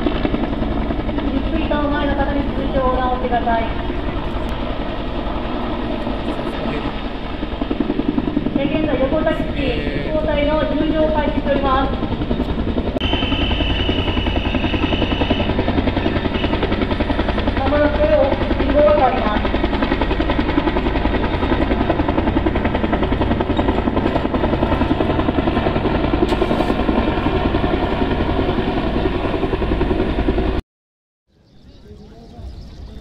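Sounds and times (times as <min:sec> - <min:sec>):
helicopter rotor chopping overhead: 0:00.0 - 0:30.6, 0:31.3 - 0:33.0.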